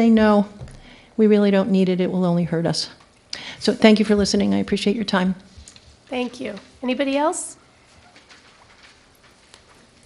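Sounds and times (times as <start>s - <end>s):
small ticks and shuffles: 7.8s - 10.0s.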